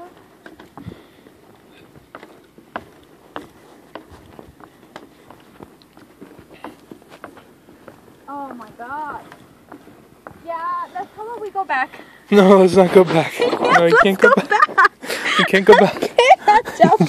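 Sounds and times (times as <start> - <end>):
footsteps on bridge deck: 0.0 - 17.0.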